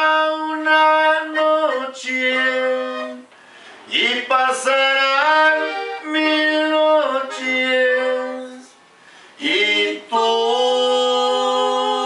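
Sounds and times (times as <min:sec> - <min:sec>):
man singing long notes: 0:00.0 - 0:03.3, 0:03.9 - 0:08.8, 0:09.4 - 0:12.0
button accordion chords: 0:00.0 - 0:08.7.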